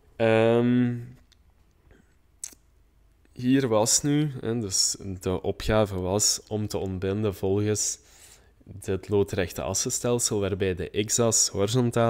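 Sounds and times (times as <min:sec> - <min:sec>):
person saying um: 0:00.2 - 0:01.2.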